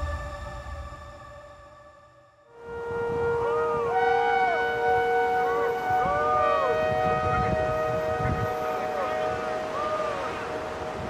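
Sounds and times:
low rumble: 0.0s - 2.0s
pitch glides: 2.6s - 11.0s
synthesized held tones: 2.6s - 11.0s.

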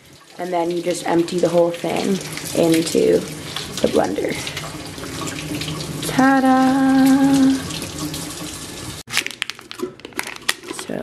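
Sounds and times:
tap water splashing into sink: 0.0s - 8.6s
plastic packet being handled: 9.1s - 11.0s.

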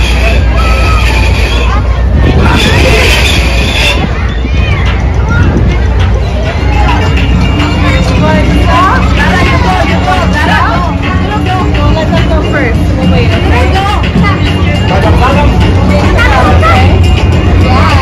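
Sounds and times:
background music: 0.0s - 18.0s
voices chattering: 0.0s - 18.0s.

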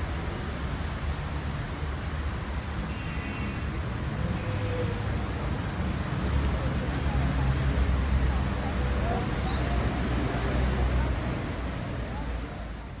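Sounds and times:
city street traffic rumble: 0.0s - 13.0s.

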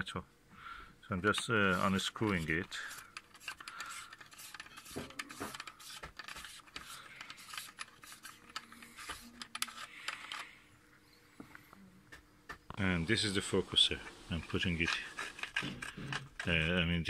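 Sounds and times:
metal cap being unscrewed: 1.4s - 10.4s, 14.3s - 16.6s.

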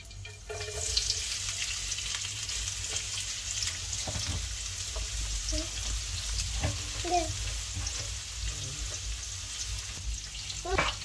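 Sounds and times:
onions sizzling in hot oil: 0.0s - 11.0s.

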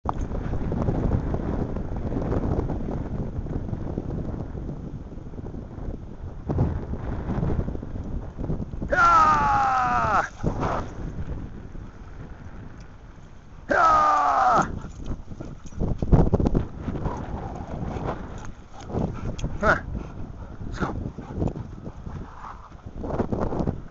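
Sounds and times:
wind on microphone: 0.0s - 23.9s.

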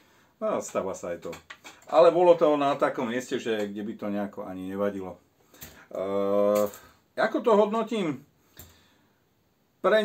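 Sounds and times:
man speaking: 0.4s - 8.3s, 9.8s - 10.0s.

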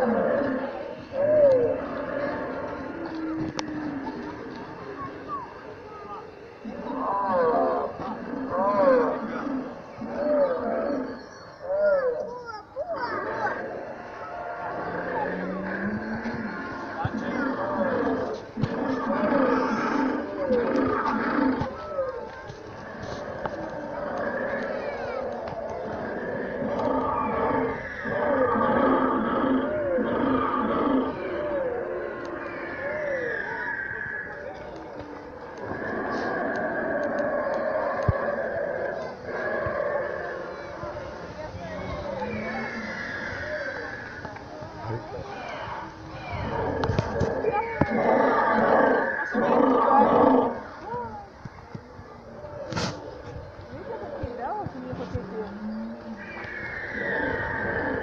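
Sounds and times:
recorded dinosaur roaring: 0.0s - 41.1s, 41.7s - 51.2s, 52.3s - 58.0s.

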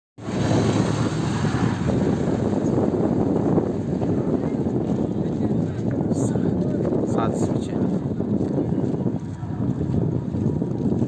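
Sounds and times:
outdoor background rush: 0.2s - 11.0s.

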